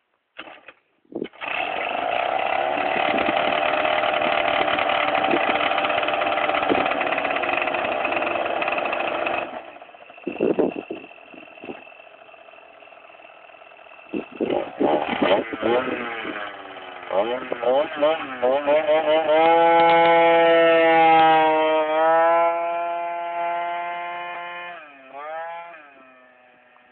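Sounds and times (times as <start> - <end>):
scooter engine revving and idling: 1.2 - 26.9.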